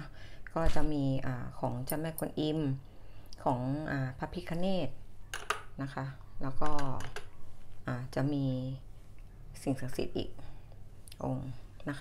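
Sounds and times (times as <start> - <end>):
woman speaking: 0.0 - 2.8, 3.4 - 5.0, 5.7 - 7.2, 7.8 - 8.9, 9.5 - 12.0.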